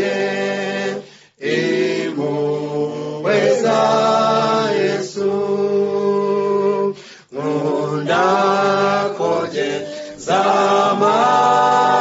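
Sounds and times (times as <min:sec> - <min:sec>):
unaccompanied voices chanting: 0:00.0 - 0:12.0.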